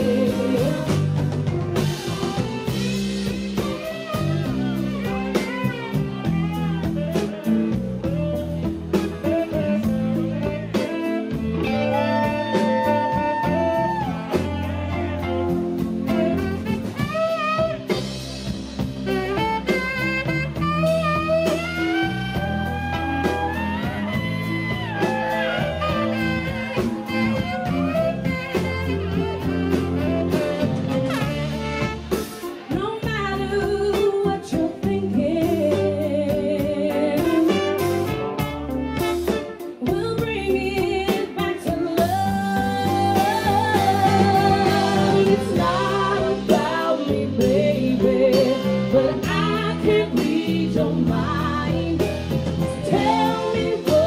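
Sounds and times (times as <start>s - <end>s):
trumpet: 0.0s - 33.3s, 35.5s - 40.0s, 41.4s - 54.0s
bass guitar: 0.0s - 54.0s
drums: 0.0s - 54.0s
electric guitar: 0.0s - 54.0s
tenor saxophone: 0.0s - 54.0s.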